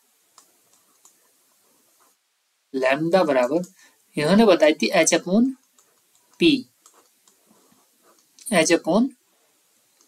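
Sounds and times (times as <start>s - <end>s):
stylus clicking on tablet screen: 0.2s - 2.2s, 5.4s - 8.5s.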